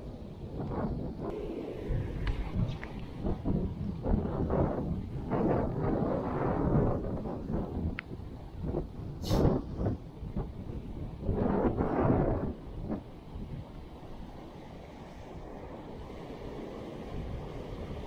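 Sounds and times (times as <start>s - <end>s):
wind buffeting microphone: 0.0s - 18.0s
small waves washing on sand: 12.4s - 18.0s.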